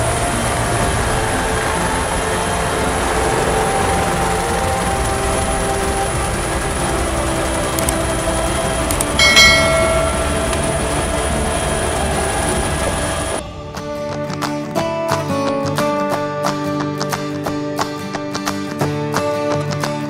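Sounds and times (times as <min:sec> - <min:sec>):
helicopter engine and rotor rumble: 0:00.0 - 0:13.8.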